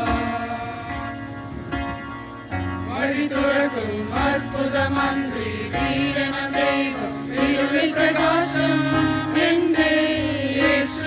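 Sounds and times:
voices singing devotional song: 0:00.0 - 0:01.6, 0:02.9 - 0:11.0
sustained instrumental backing: 0:00.0 - 0:11.0.

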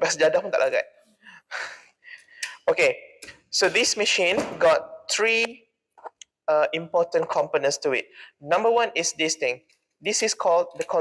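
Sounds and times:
man speaking: 0:00.0 - 0:01.0, 0:02.6 - 0:05.6, 0:06.4 - 0:11.0.

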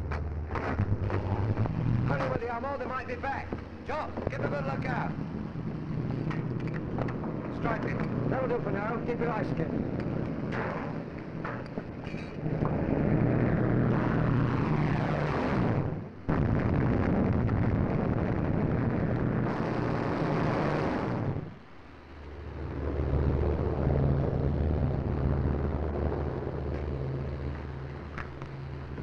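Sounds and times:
propeller plane engines: 0:00.0 - 0:29.0.

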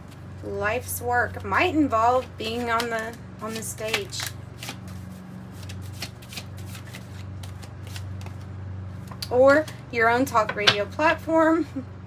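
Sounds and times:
cards being shuffled: 0:00.0 - 0:00.5, 0:01.4 - 0:09.3.

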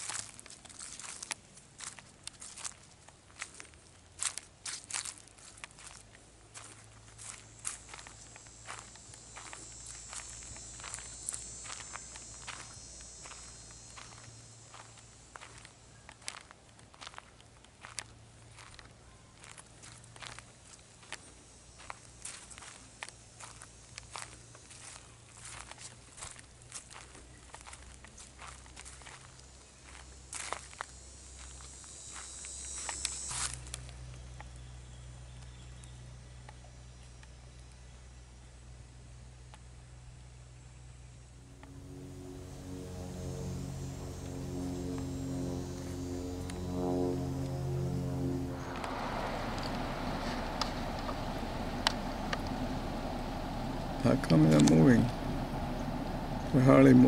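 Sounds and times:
footsteps on gravel: 0:00.0 - 0:30.7
insect drone: 0:00.0 - 0:57.0.

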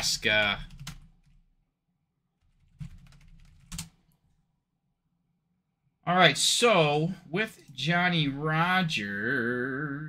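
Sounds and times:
computer keyboard typing: 0:00.2 - 0:01.4, 0:02.4 - 0:04.0.

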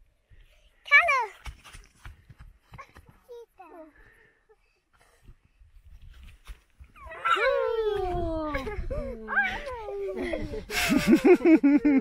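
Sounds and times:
wind rumbling on microphone: 0:07.0 - 0:10.8.

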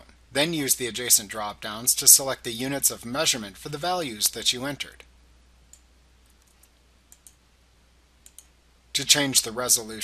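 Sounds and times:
faint computer mouse clicks: 0:05.7 - 0:07.4, 0:08.2 - 0:08.6
keystrokes: 0:08.2 - 0:08.5.

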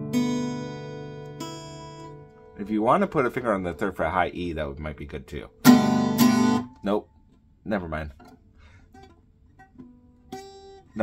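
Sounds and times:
acoustic guitar chord: 0:00.0 - 0:04.0, 0:05.6 - 0:06.8.

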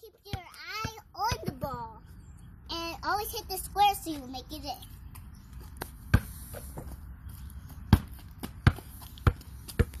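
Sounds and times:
basketball bouncing on concrete: 0:00.1 - 0:02.0, 0:05.1 - 0:10.0.

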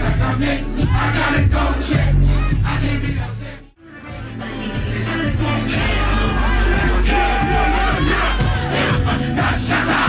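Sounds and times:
rapping over a bass-heavy beat: 0:00.0 - 0:10.0
crowd yelling and shouting: 0:04.8 - 0:10.0.

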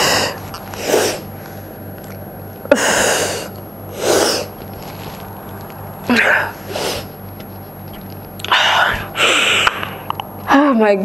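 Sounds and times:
woman speaking: 0:10.5 - 0:11.0.

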